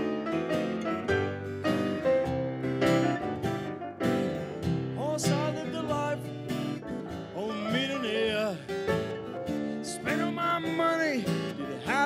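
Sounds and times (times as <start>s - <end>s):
acoustic guitar: 0.0s - 12.0s
piano: 0.0s - 12.0s.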